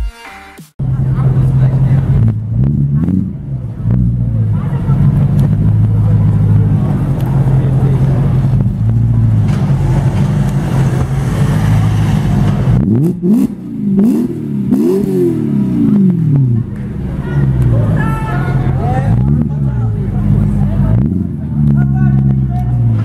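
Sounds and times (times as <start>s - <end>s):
car engine idling loudly: 0.8s - 23.0s
engine throttle blips: 0.8s - 23.0s.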